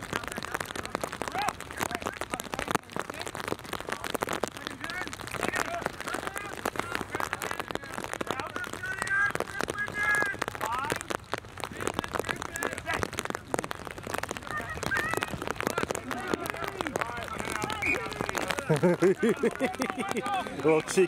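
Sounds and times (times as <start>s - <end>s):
players shouting and calling: 0.0s - 21.0s
rain pattering on plastic cover: 0.0s - 21.0s.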